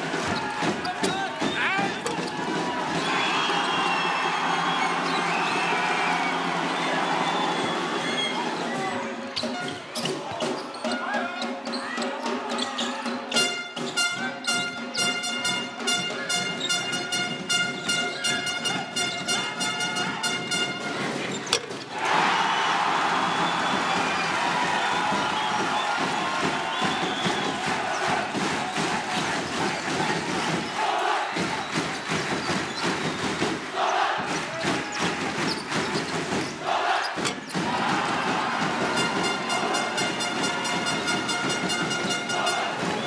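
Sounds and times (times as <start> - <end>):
crowd cheering and shouting: 0.0 - 16.7, 17.8 - 43.0.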